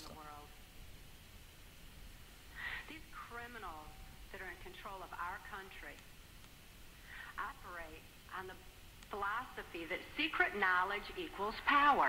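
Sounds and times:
woman speaking: 0.0s - 0.6s, 2.6s - 6.1s, 7.2s - 12.0s.

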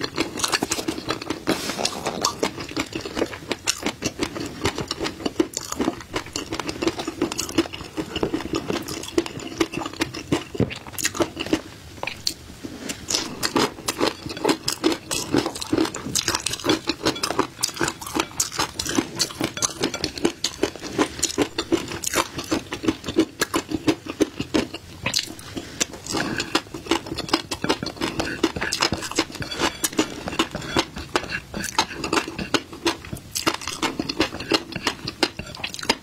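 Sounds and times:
chewing crisp popping fish roe: 0.0s - 12.4s, 13.0s - 36.0s.

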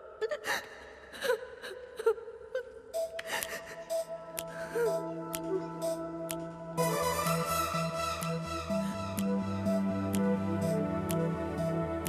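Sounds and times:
woman crying and sobbing: 0.0s - 6.0s.

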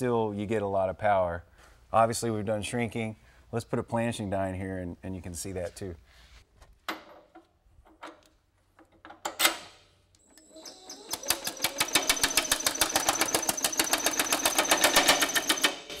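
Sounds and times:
tooling clicks: 10.2s - 15.8s.

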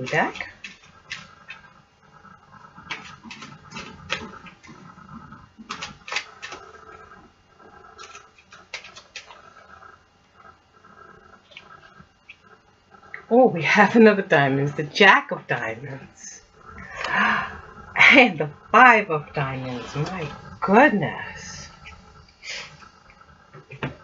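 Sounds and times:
playing cards being shuffled: 5.6s - 6.8s, 8.0s - 9.5s.

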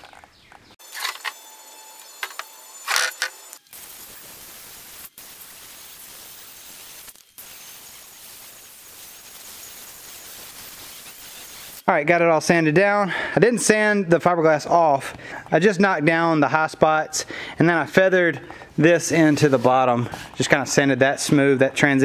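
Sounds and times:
power sander grinding: 0.8s - 11.9s.

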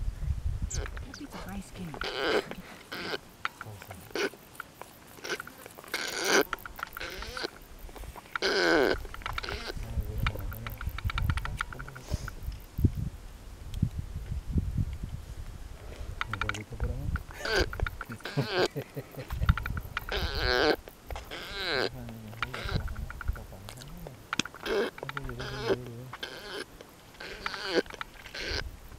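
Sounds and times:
baboon vocal calls: 0.7s - 12.4s, 16.2s - 28.7s
baboon lip-smacking clicks: 1.9s - 7.6s, 8.3s - 12.6s, 16.2s - 28.6s.

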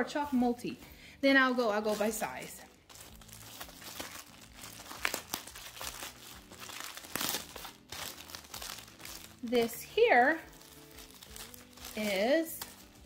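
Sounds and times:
plastic bag crinkling: 1.7s - 13.0s.

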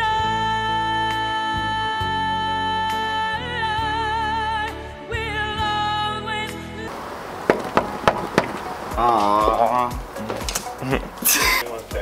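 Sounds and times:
knuckles knocking on door: 7.5s - 8.8s.

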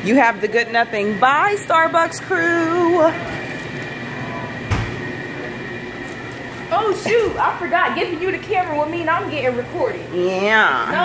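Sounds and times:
faint high machine whine: 0.0s - 11.0s
room rumble: 0.0s - 11.0s.

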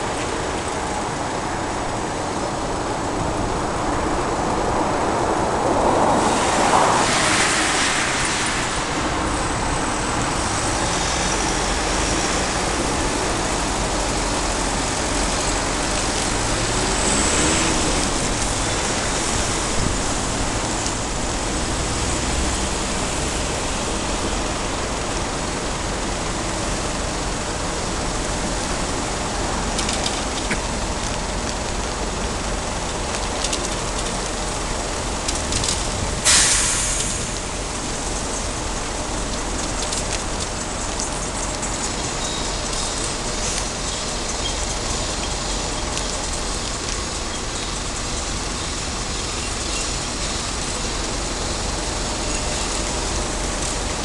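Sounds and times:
road traffic rushing: 0.0s - 54.0s.

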